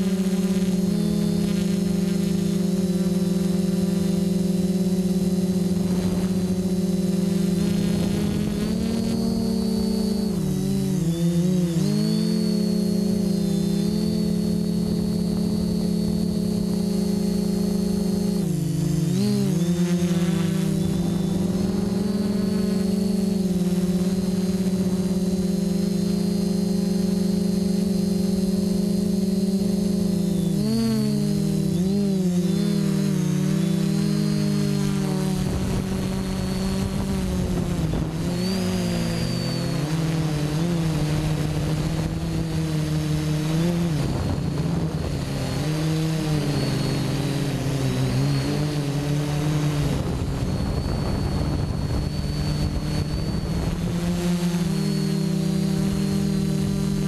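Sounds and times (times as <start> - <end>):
drone motors and propellers droning: 0.0 - 57.0.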